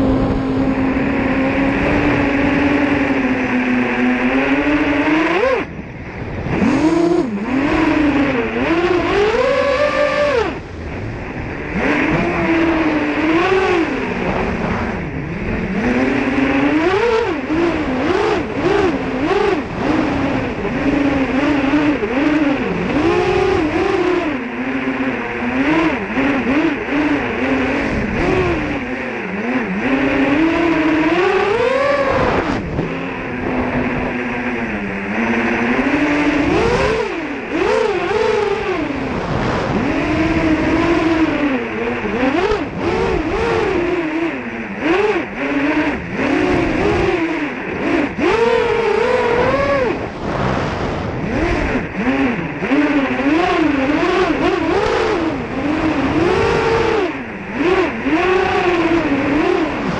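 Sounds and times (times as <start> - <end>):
quadcopter motors buzzing: 0.0 - 59.9.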